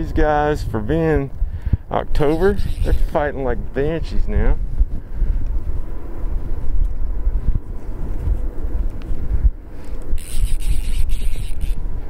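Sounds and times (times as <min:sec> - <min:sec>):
wind buffeting microphone: 0:00.0 - 0:12.0
high-pitched buzz: 0:02.2 - 0:04.3, 0:10.1 - 0:12.0.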